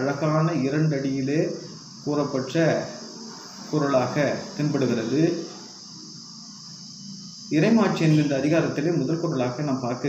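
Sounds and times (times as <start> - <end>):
high-pitched hiss: 0.0 - 10.0
man speaking: 3.7 - 5.5, 7.5 - 10.0.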